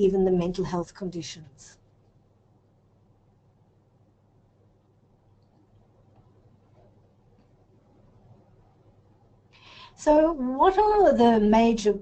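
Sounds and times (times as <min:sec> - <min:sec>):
speech: 0:00.0 - 0:01.8, 0:10.0 - 0:12.0
soft breath: 0:09.5 - 0:10.0.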